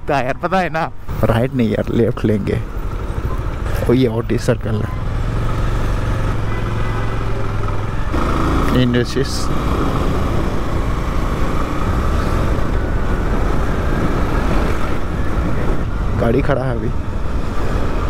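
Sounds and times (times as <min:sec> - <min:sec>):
motorcycle engine running: 0:04.9 - 0:11.8.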